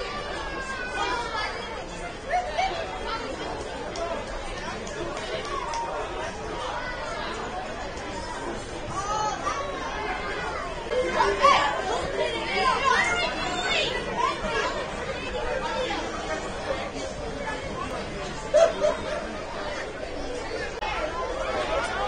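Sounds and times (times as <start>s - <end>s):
spectators chattering: 0.0s - 22.0s
players shouting: 8.9s - 22.0s.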